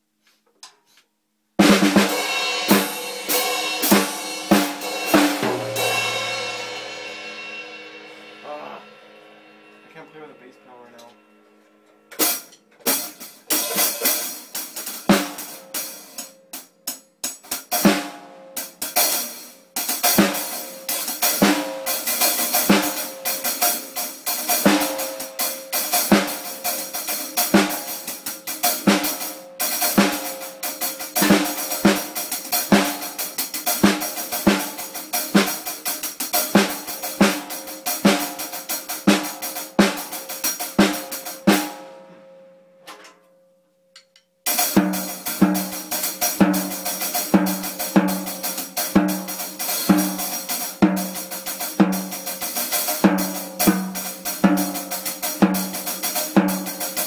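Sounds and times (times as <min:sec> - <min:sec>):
drum kit played with sticks: 0:01.6 - 0:43.2, 0:44.0 - 0:57.0.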